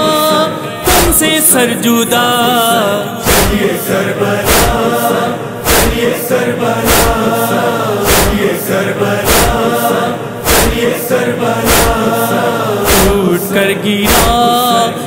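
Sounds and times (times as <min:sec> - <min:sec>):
male voices chanting: 0:00.0 - 0:15.0
deep steady thump: 0:05.7 - 0:06.0, 0:06.9 - 0:07.2, 0:08.0 - 0:08.5, 0:09.2 - 0:09.6, 0:10.4 - 0:10.9, 0:11.7 - 0:12.0.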